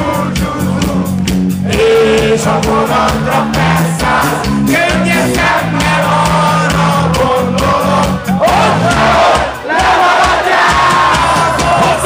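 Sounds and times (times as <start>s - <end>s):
crowd singing and shouting: 0.0s - 12.0s
live rock band playing: 0.0s - 12.0s.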